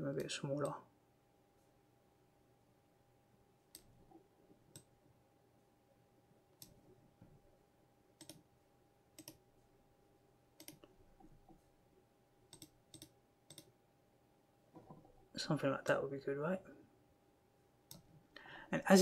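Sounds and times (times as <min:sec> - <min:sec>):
computer mouse clicks: 0:03.7 - 0:04.9, 0:06.6 - 0:06.8, 0:08.2 - 0:08.5, 0:09.2 - 0:09.4, 0:10.6 - 0:11.6, 0:12.5 - 0:13.7, 0:17.9 - 0:18.1.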